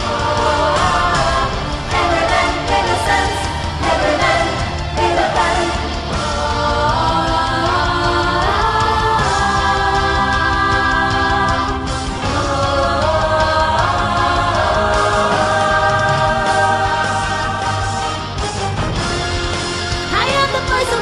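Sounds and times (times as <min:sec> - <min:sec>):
woman singing wordless harmony: 0:00.0 - 0:17.9
symphonic metal backing track: 0:00.0 - 0:21.0.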